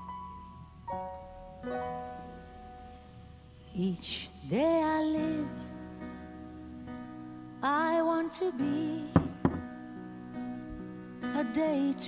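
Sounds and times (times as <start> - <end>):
soft background music: 0.0 - 12.0
sharp knocks: 9.2 - 9.7.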